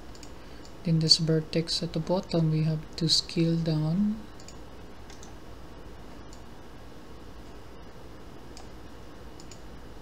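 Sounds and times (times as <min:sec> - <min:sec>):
microphone hiss and hum: 0:00.0 - 0:10.0
computer mouse clicks: 0:00.1 - 0:00.8, 0:04.4 - 0:05.4, 0:06.3 - 0:06.5, 0:08.5 - 0:08.8, 0:09.4 - 0:09.7.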